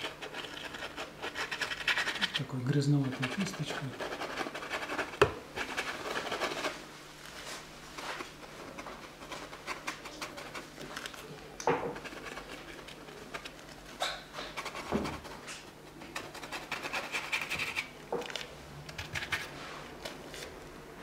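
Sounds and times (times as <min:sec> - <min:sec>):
brush scratching on canvas: 0:03.0 - 0:06.8.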